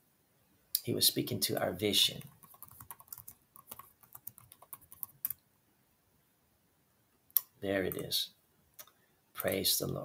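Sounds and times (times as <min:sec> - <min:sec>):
typing on computer keyboard: 0:02.2 - 0:05.4.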